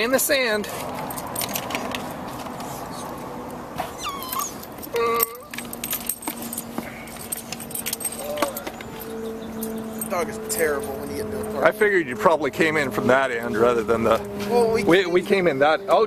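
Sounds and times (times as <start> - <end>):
dog tags jingling: 1.0 - 2.3, 4.0 - 11.7.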